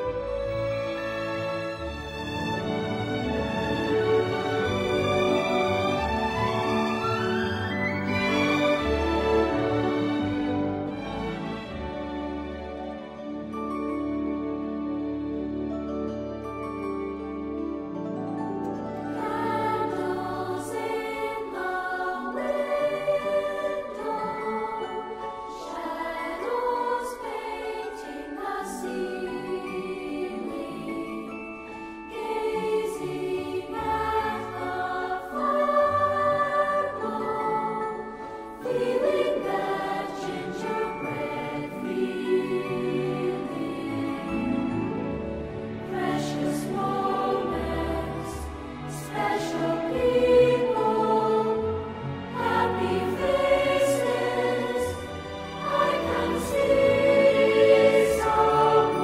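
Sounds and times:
musical accompaniment: 0.0s - 59.0s
choir singing held notes: 19.0s - 59.0s.

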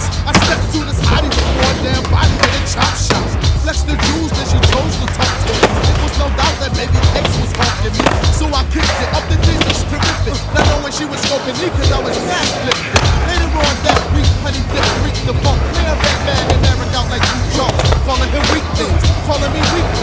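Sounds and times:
music with heavy bass beat: 0.0s - 20.0s
skateboards rolling on concrete: 0.0s - 20.0s
skateboard clacks: 0.3s - 20.0s.

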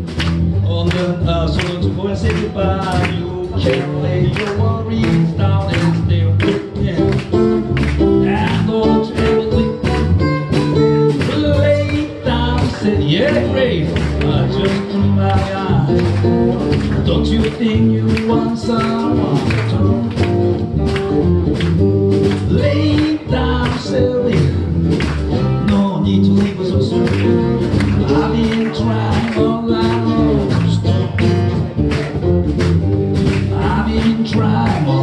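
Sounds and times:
acoustic guitar: 0.0s - 35.0s
drum kit beat: 0.0s - 35.0s
electric bass: 0.0s - 35.0s
man singing: 0.5s - 20.3s, 22.4s - 31.8s, 33.2s - 35.0s.

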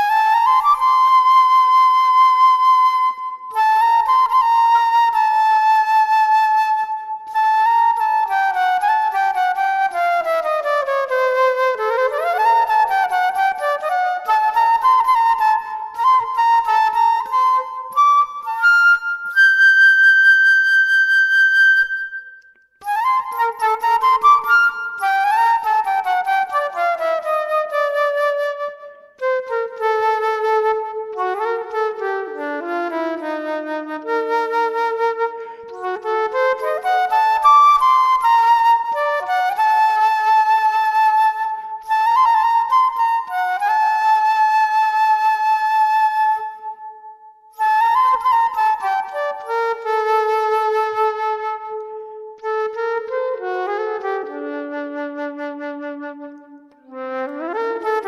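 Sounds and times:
flute melody: 0.0s - 58.0s.

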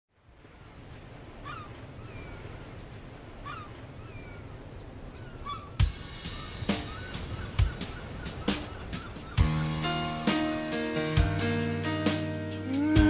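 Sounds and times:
bird gliding calls: 1.4s - 2.7s, 3.4s - 9.6s.

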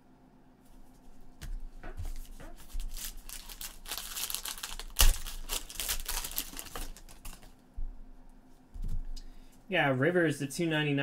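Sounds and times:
foil wrapper crinkling and tearing: 2.1s - 7.6s.

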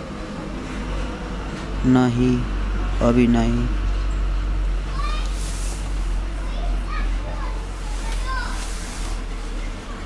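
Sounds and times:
faint high-pitched voices: 4.8s - 10.0s.

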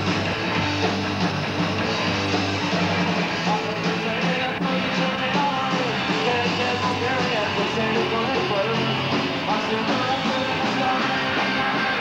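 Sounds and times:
punk rock band playing live: 0.0s - 12.0s
lead singer vocals: 3.4s - 12.0s.

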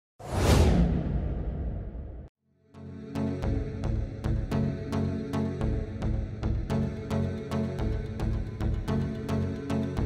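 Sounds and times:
whoosh sound effect: 0.2s - 2.3s.

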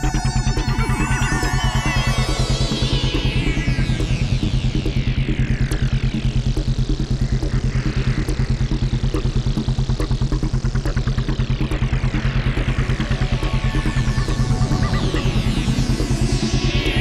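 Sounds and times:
electronic synthesizer music: 0.0s - 17.0s.

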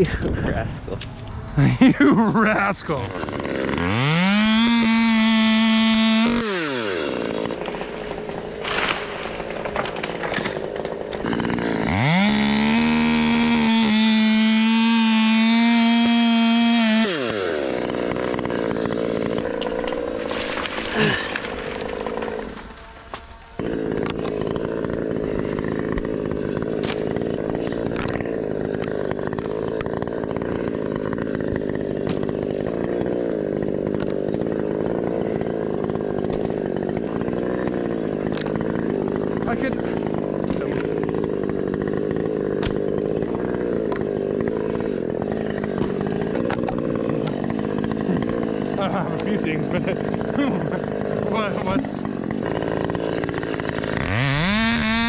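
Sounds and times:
chainsaw engine running: 0.0s - 55.0s.

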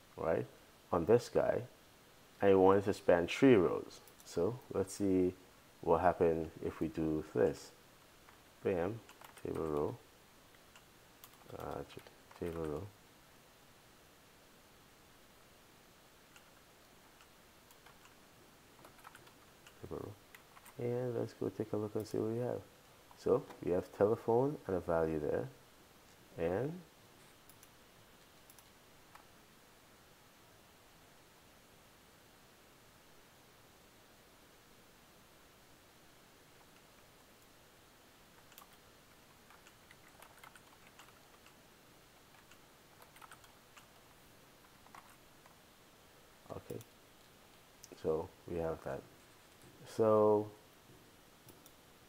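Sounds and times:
computer keyboard typing: 8.3s - 10.0s, 10.6s - 12.9s, 16.3s - 18.2s, 18.8s - 20.8s, 38.4s - 41.6s, 42.3s - 44.0s, 44.6s - 45.6s.

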